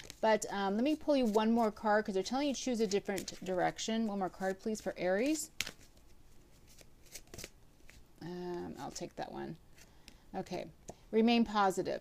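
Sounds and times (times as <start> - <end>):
cards shuffling and rustling: 0.0 - 9.1.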